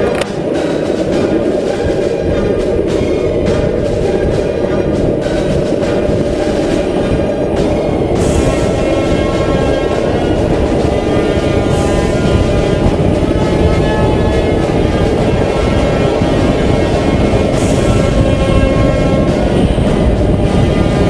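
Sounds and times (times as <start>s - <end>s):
wheels rolling over asphalt: 0.0s - 21.0s
wind buffeting microphone: 0.0s - 21.0s.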